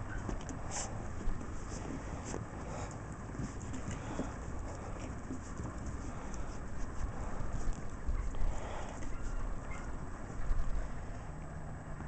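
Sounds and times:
puppies scrambling on wooden boards: 0.0 - 11.0.

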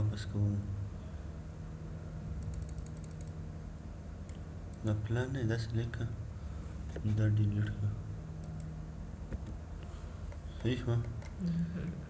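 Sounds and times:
steady low hum: 0.0 - 12.0
computer mouse clicks: 2.4 - 3.4.

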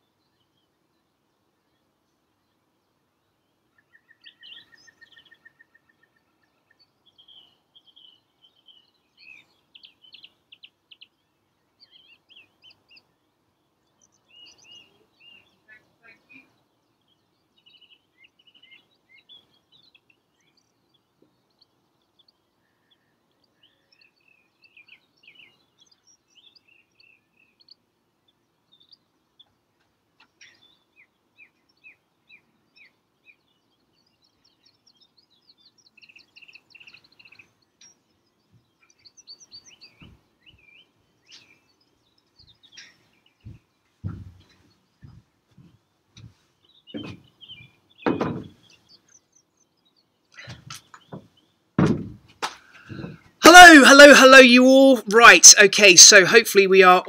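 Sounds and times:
songbirds chirping and trilling: 0.0 - 57.0.

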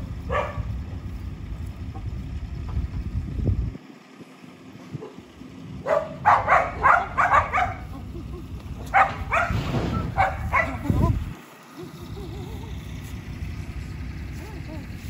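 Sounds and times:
dog barking: 0.3 - 0.7, 5.8 - 7.9, 8.9 - 10.8.

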